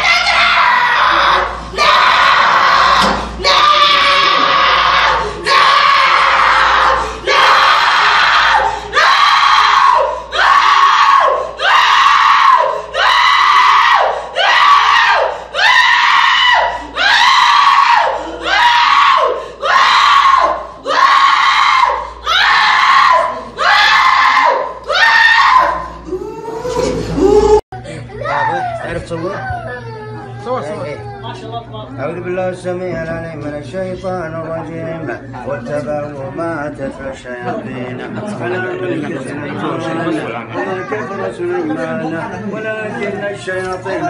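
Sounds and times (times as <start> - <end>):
woman screaming: 3.5 - 27.6.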